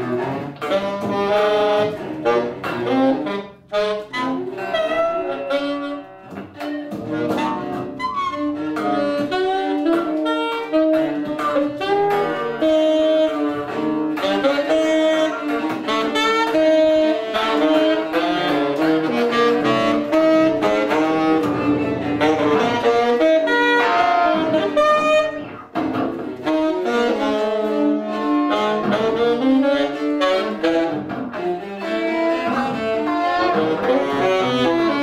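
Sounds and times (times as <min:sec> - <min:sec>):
electric guitar: 0:00.0 - 0:35.0
saxophone playing short notes: 0:00.0 - 0:35.0
bowed cello: 0:13.2 - 0:26.4, 0:28.0 - 0:35.0.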